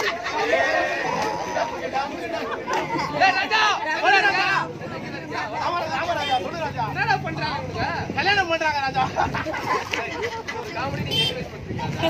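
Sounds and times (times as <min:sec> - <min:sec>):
people talking and chattering: 0:00.0 - 0:12.0.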